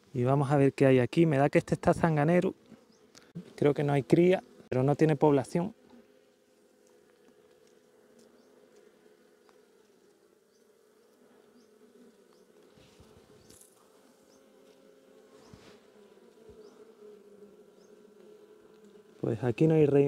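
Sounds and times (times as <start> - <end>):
honeybees buzzing: 0.0 - 20.0.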